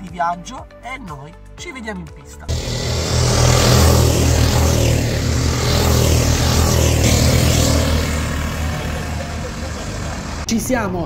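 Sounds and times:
go-kart engines driving past: 2.5s - 11.0s.

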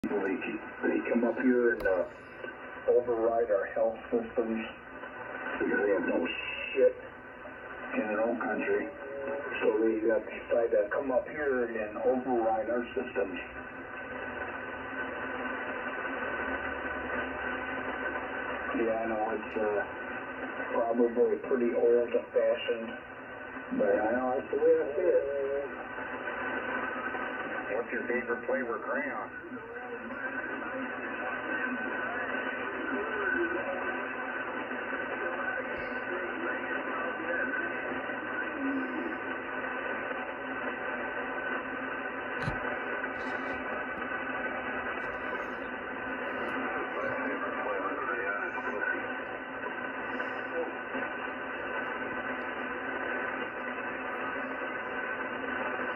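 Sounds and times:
radio static hiss: 0.0s - 55.9s.

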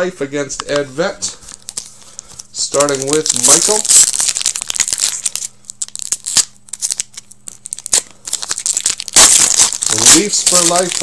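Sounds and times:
foil wrapper tearing and crinkling: 1.5s - 11.0s.

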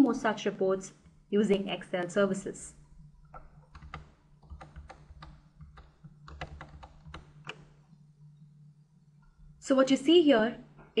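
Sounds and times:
computer keyboard taps: 3.4s - 7.8s.

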